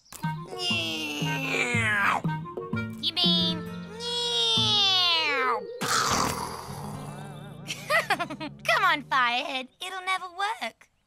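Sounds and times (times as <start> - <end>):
soft background music: 0.0 - 10.6
cartoon voice wailing cry: 0.5 - 2.3, 3.9 - 5.6
rough noisy vocal sound: 5.8 - 7.4.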